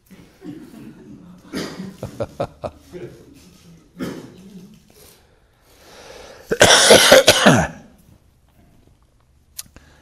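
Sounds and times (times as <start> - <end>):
man coughing: 0.3 - 2.1, 4.0 - 4.5, 6.5 - 7.9
man laughing heartily: 1.9 - 3.2.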